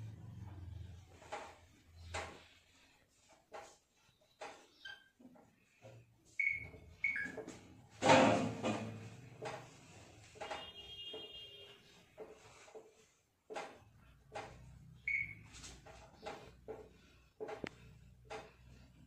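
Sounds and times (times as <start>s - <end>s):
marker squeaks: 4.0s - 5.2s
thump: 8.0s - 9.0s.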